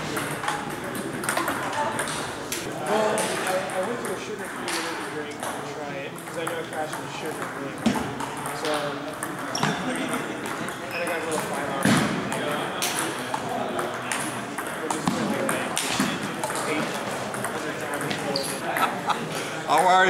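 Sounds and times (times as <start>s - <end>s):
background voices chattering: 0.0s - 20.0s.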